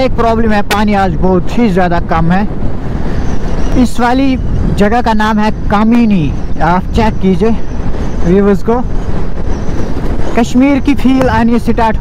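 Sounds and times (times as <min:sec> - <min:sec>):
motorcycle road noise: 0:00.0 - 0:12.0
wind buffeting microphone: 0:00.0 - 0:12.0.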